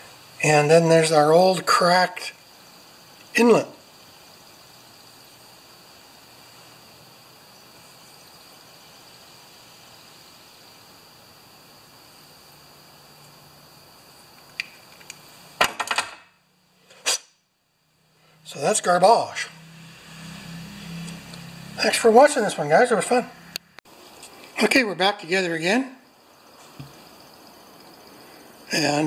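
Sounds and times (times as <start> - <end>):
faint steady hiss: 0.0 - 29.0.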